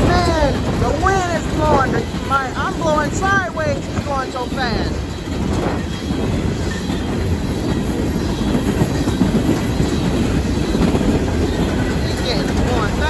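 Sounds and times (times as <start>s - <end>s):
train wheels rumbling and clattering: 0.0s - 13.0s.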